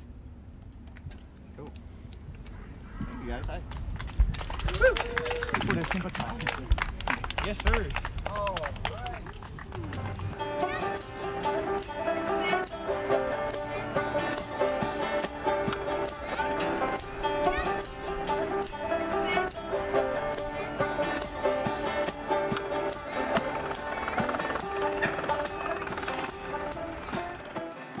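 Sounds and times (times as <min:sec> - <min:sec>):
plucked string notes: 0:09.8 - 0:28.0
percussive rattle: 0:10.0 - 0:12.9, 0:13.5 - 0:19.7, 0:20.3 - 0:27.2.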